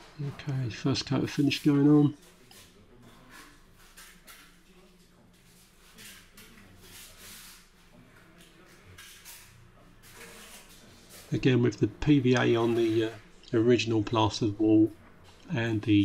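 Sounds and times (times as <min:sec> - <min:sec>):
plastering trowel scraping: 0:05.4 - 0:07.8, 0:08.8 - 0:11.4, 0:12.5 - 0:13.2.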